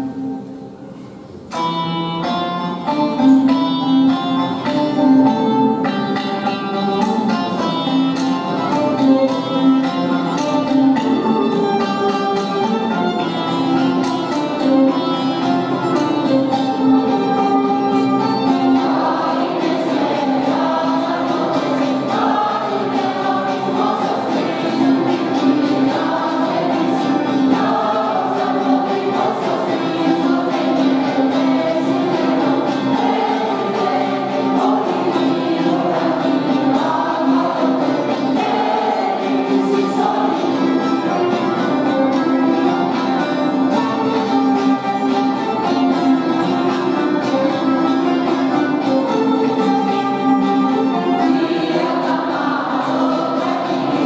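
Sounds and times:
instrumental accompaniment: 0:00.0 - 0:54.0
mixed choir singing a carol: 0:06.4 - 0:54.0.

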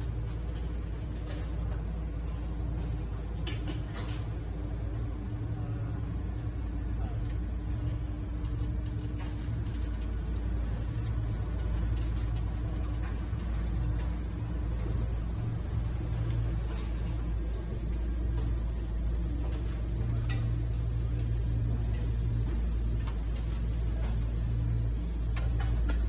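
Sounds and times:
faint hum: 0:00.0 - 0:26.0
low rumble of hall ambience: 0:00.0 - 0:26.0.

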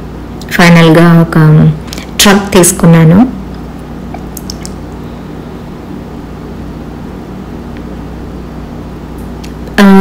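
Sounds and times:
warehouse background hum: 0:00.0 - 0:10.0.

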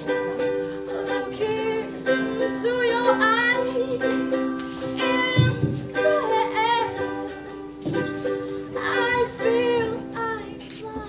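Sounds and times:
ukulele strumming: 0:00.0 - 0:11.0
woman singing with vibrato: 0:00.6 - 0:07.6, 0:08.6 - 0:11.0.

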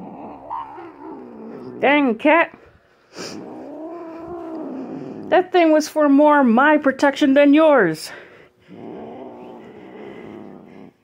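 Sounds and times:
cat growling: 0:00.0 - 0:02.1, 0:03.1 - 0:05.4, 0:08.6 - 0:11.0.

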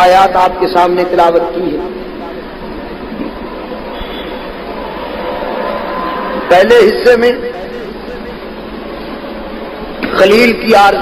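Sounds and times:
steady hiss and rumble: 0:00.0 - 0:11.0.

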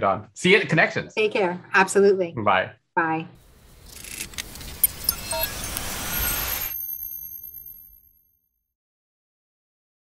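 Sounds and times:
whoosh of noise: 0:03.4 - 0:07.8
sharp clicks: 0:03.8 - 0:05.9
high thin chime tones: 0:04.6 - 0:08.5.

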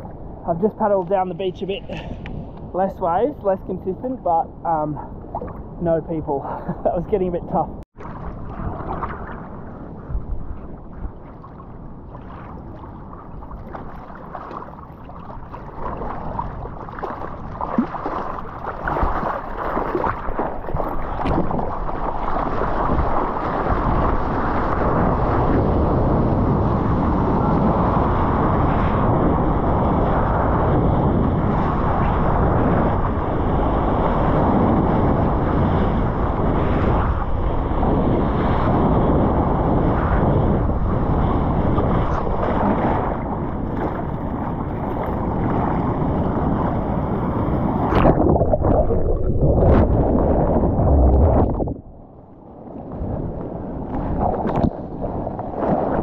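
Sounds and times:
wind buffeting microphone: 0:00.0 - 0:56.0
water rushing and splashing: 0:07.9 - 0:25.5, 0:40.8 - 0:56.0.

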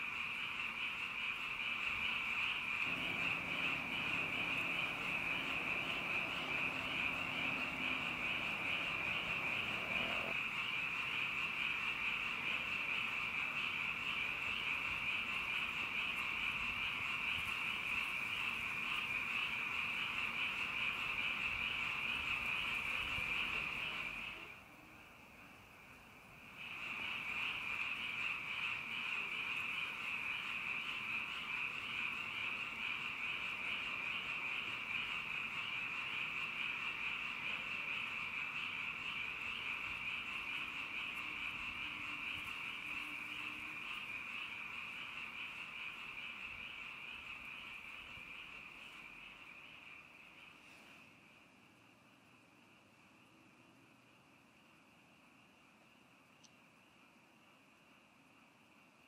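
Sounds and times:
chorus of calling animals: 0:00.0 - 0:51.0.

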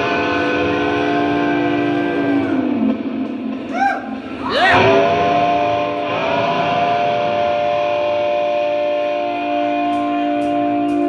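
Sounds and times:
distorted electric guitar chord: 0:00.0 - 0:03.7, 0:04.8 - 0:11.0.

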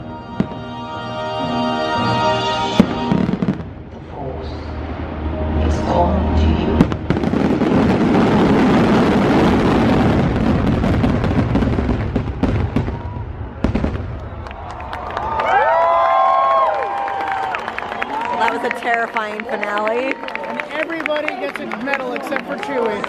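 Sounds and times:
fireworks bangs and crackling: 0:00.0 - 0:00.8, 0:02.7 - 0:05.1, 0:06.7 - 0:15.3.

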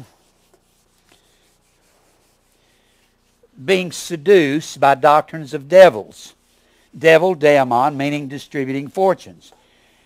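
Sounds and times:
marker rubbing on whiteboard: 0:00.0 - 0:03.9.

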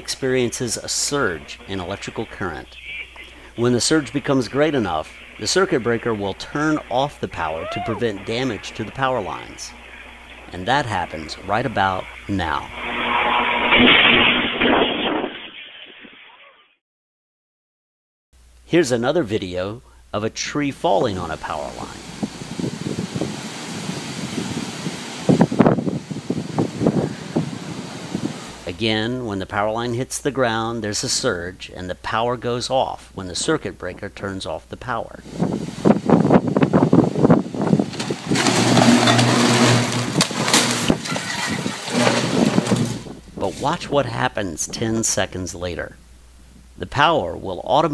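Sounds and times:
power line arcing roar: 0:00.0 - 0:15.8, 0:20.9 - 0:28.8, 0:35.2 - 0:43.8
loud electrical buzz: 0:08.3 - 0:16.1, 0:37.2 - 0:43.3
electrical snaps and crackles: 0:12.6 - 0:16.3, 0:37.8 - 0:43.2.

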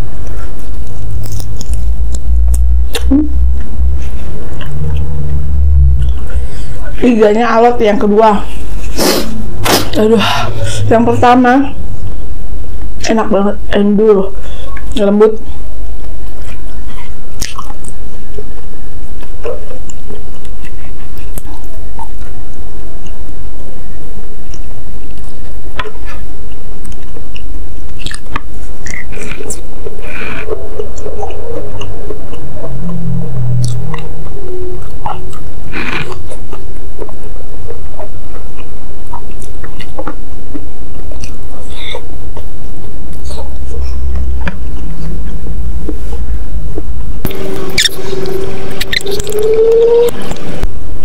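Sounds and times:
close chewing and biting: 0:24.5 - 0:42.5.

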